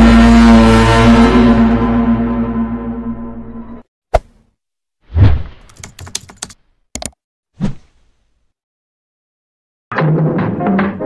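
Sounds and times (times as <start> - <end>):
keyboard key clicks: 5.7 - 7.2.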